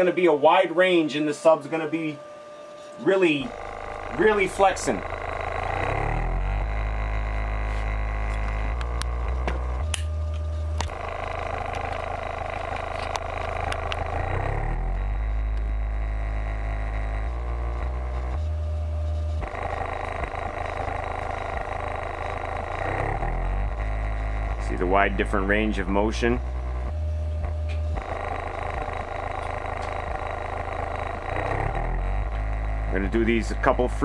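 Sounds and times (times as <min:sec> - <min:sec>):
buzz of overtones: 0:00.0 - 0:34.0
deep bass test tone: 0:02.6 - 0:34.0.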